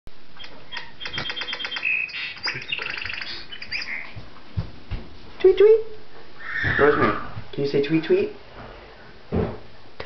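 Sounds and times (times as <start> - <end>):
clock playing recorded bird song: 0.4 - 4.2.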